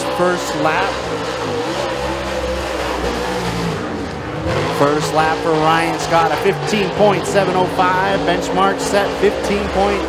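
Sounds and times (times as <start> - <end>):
race car engine running hard: 0.0 - 10.0.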